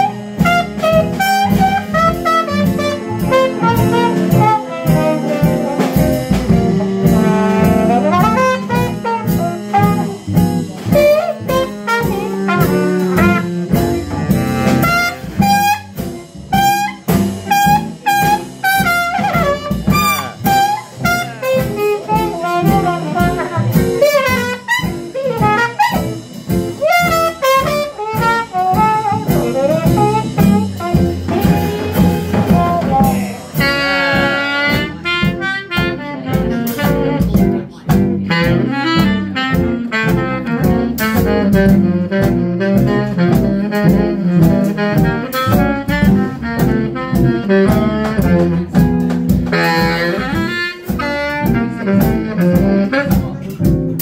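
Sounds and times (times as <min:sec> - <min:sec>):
baritone saxophone: 0:00.0 - 0:54.0
jazz band playing: 0:00.0 - 0:54.0
trumpet: 0:00.0 - 0:54.0.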